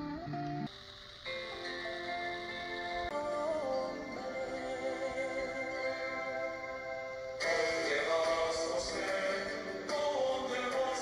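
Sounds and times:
radio music with singing: 0:00.0 - 0:11.0.

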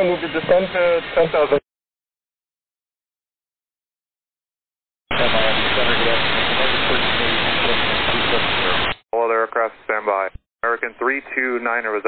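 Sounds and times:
radio static hiss: 0:00.0 - 0:01.6, 0:05.1 - 0:12.0
faint voice in static: 0:05.1 - 0:12.0
person speaking over radio: 0:05.1 - 0:12.0.

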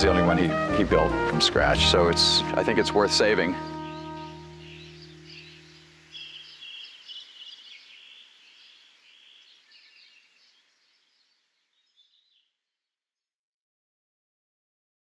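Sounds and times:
sustained music chord: 0:00.0 - 0:06.6
birds chirping: 0:00.0 - 0:12.6.

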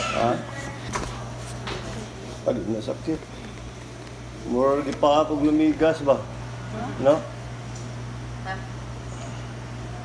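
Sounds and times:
low hum of room machinery: 0:00.0 - 0:10.0.

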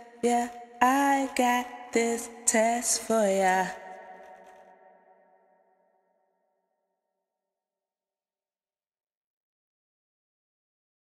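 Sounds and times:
vocal reverb tail ringing: 0:00.0 - 0:05.6.

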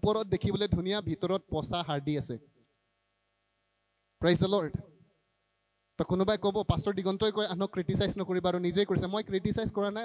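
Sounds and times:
man speaking through a microphone: 0:00.0 - 0:02.4, 0:04.2 - 0:04.9, 0:06.0 - 0:10.0
faint electrical hum: 0:00.0 - 0:10.0.

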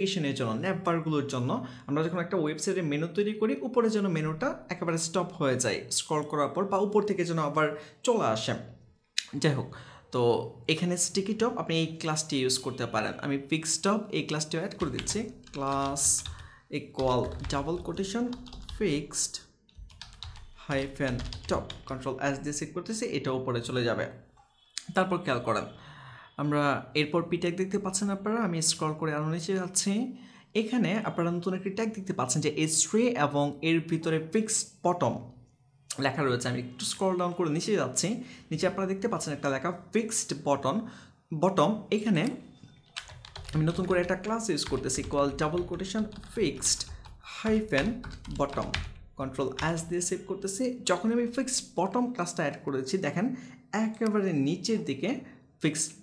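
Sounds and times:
person talking: 0:00.0 - 0:19.6, 0:20.5 - 0:24.2, 0:35.9 - 0:42.5, 0:43.4 - 0:56.0
computer keyboard typing: 0:14.7 - 0:22.2, 0:42.2 - 0:49.9.

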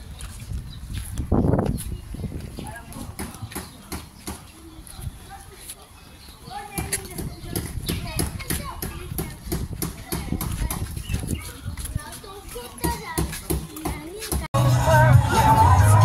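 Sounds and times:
people talking: 0:02.2 - 0:14.5.

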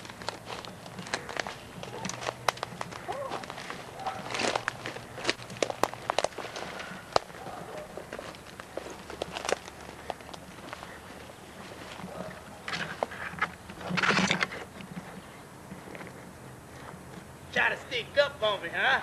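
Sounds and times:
twigs snapping underfoot: 0:00.0 - 0:07.4, 0:08.0 - 0:10.9
footsteps crunching dry leaves: 0:00.0 - 0:14.2.

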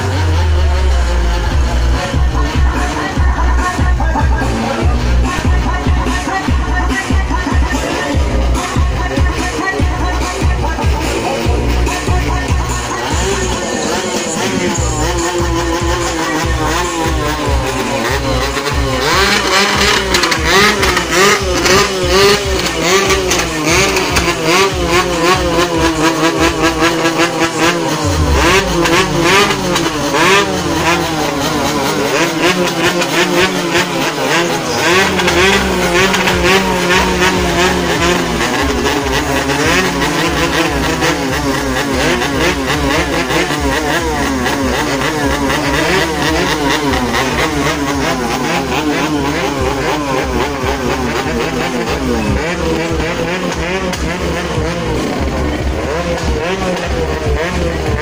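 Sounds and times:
motorcycle engines revving: 0:00.0 - 0:58.0
vehicle engines running: 0:00.0 - 0:58.0.

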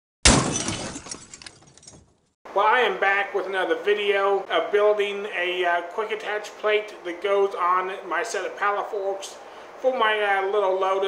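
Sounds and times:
glass shattering crash: 0:00.2 - 0:02.3.

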